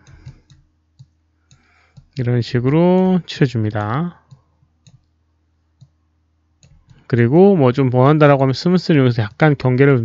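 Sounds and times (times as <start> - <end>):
faint computer mouse clicks: 0.0 - 2.2, 4.3 - 5.2, 6.6 - 7.1.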